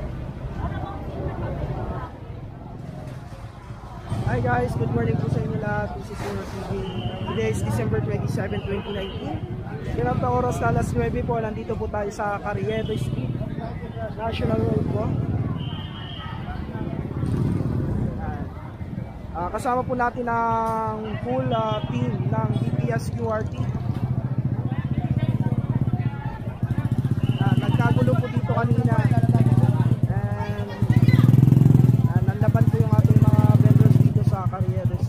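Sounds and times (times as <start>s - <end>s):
people's voices: 0.0s - 35.0s
street crowd chatter: 0.0s - 35.0s
motorcycle engine running: 22.1s - 35.0s.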